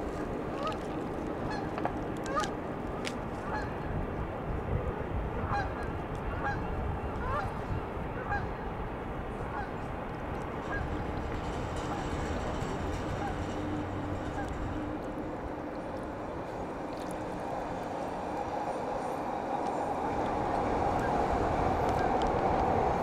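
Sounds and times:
geese honking: 10.6 - 11.0.

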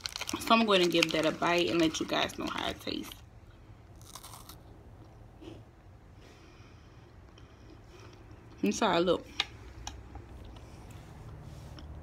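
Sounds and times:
biscuit crunch: 0.0 - 2.8, 3.9 - 4.6.

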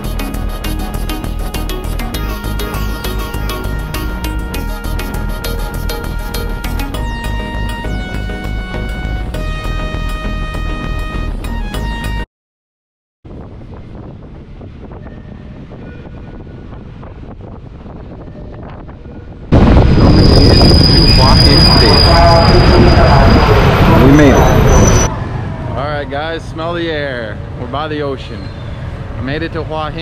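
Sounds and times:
high rail squeal: 0.0 - 8.2, 14.9 - 16.9, 18.0 - 26.4, 28.3 - 28.9
train running noise: 14.2 - 26.4
passing railcar rail noise: 14.2 - 27.7.

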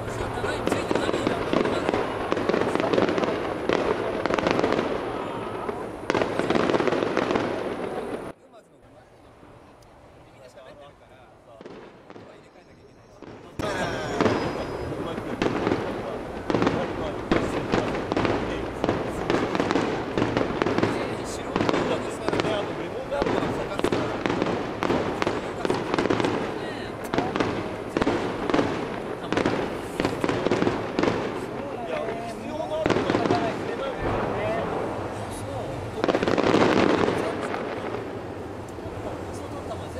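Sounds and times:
fireworks booming and crackling: 0.0 - 8.4, 11.5 - 39.9.

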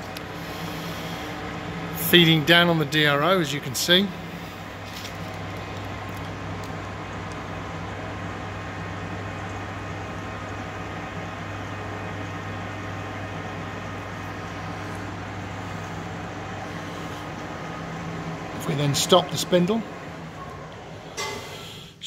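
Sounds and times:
lathe running hum: 0.0 - 22.0
low drone with steady tones: 13.6 - 22.0.

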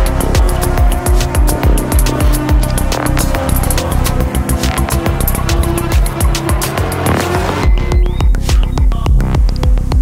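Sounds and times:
sustained synth tone: 0.0 - 8.3
driving kick drum: 0.0 - 10.0.

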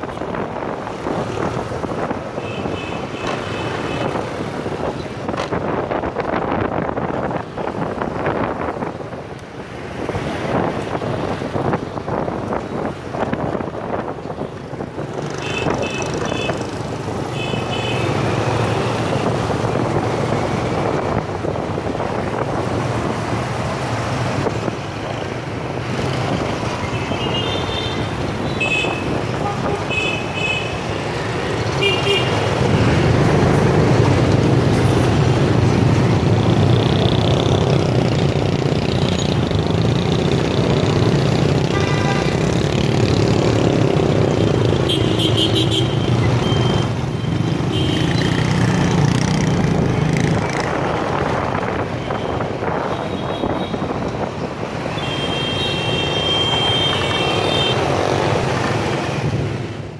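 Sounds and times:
motorbike traffic: 0.0 - 59.9.

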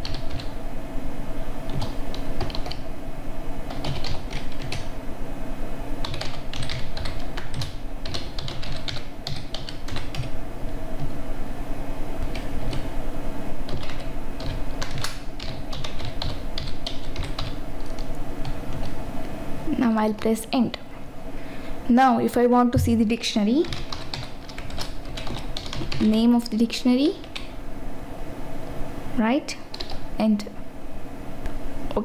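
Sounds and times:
computer keyboard typing: 0.0 - 0.6, 1.7 - 2.8, 3.7 - 4.9, 6.0 - 10.3, 12.2 - 12.9, 13.7 - 19.0, 23.5 - 26.2, 27.0 - 27.5, 29.7 - 30.0
steady low hum: 0.0 - 32.0.

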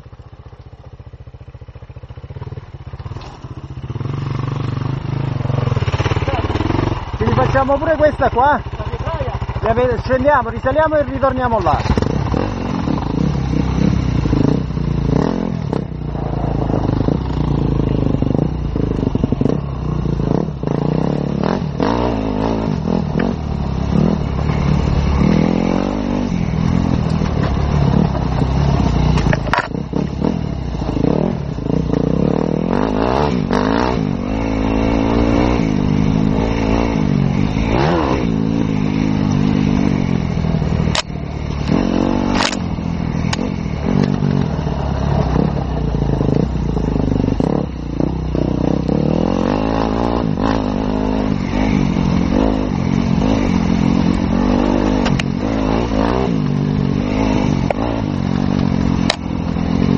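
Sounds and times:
dirt bike engine revving: 2.4 - 59.9.

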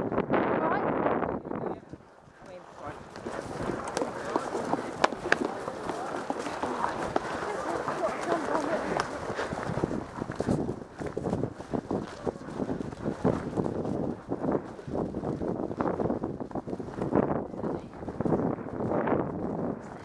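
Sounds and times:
rustling undergrowth: 2.0 - 18.6
indistinct voices: 2.4 - 10.6
horse hoofbeats: 2.4 - 20.0.

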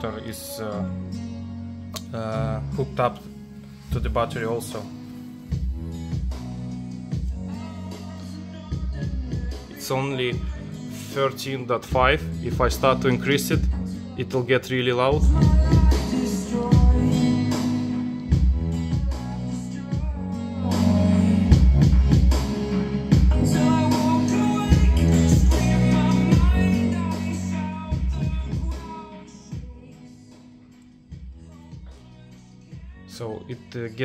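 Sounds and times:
song with heavy bass on speakers: 0.0 - 34.0.

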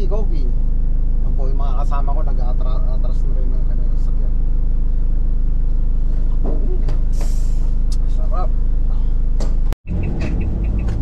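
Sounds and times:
van engine idling: 0.0 - 11.0.

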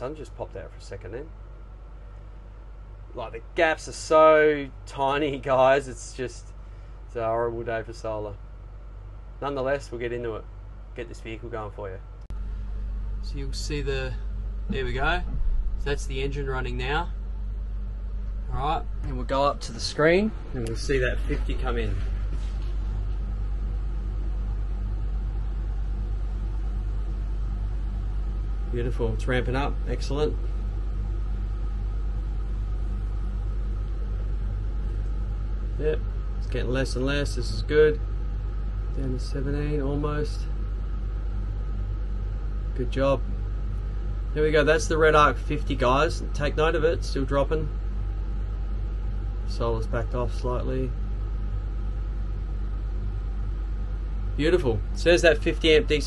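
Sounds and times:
air conditioner running: 0.0 - 56.0.

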